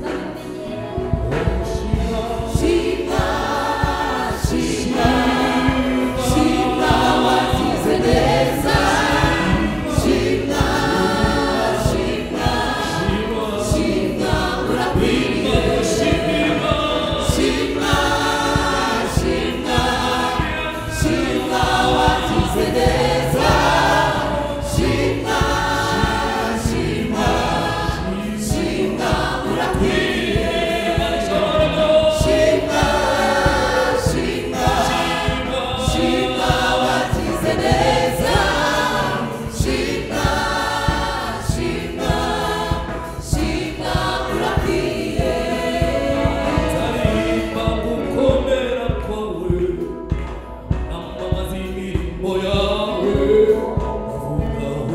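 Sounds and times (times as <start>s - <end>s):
choir singing in harmony: 0.0s - 54.9s
steady beat: 0.0s - 54.9s.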